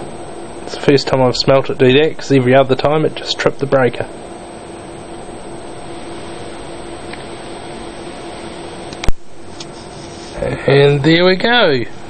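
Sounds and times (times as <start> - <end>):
laminator humming and hissing: 0.0 - 12.0.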